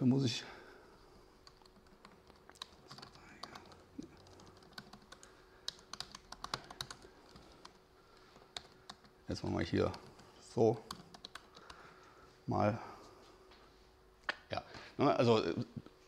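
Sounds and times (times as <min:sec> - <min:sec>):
laptop keyboard typing: 0:01.4 - 0:11.8.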